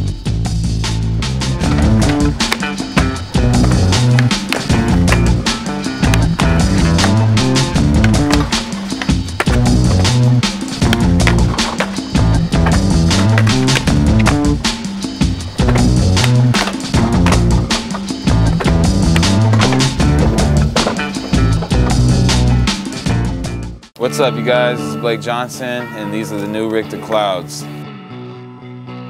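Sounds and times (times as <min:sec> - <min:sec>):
loud music with steady beat: 0:00.0 - 0:23.8
skateboard rolling on concrete: 0:01.1 - 0:23.4
skateboard popping and landing: 0:01.6 - 0:22.8.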